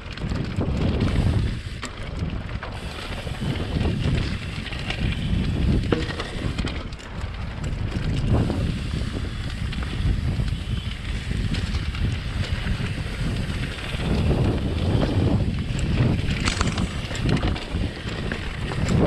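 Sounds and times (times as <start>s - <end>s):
bike clicks and rattles: 0.0s - 19.0s
tyre and trail noise: 0.0s - 19.0s
wind buffeting microphone: 0.0s - 19.0s.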